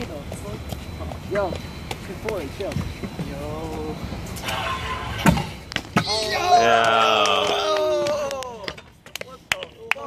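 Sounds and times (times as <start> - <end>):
scooter wheels rolling on concrete: 0.0 - 10.0.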